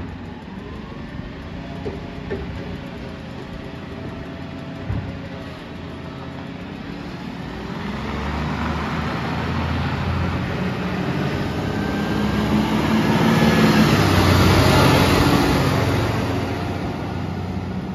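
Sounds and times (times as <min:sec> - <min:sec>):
truck driving past: 0:00.0 - 0:17.9.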